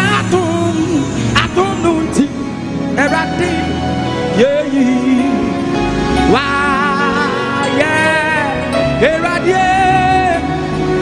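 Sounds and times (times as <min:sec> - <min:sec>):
gospel worship singing: 0:00.0 - 0:11.0
instrumental accompaniment: 0:00.0 - 0:11.0.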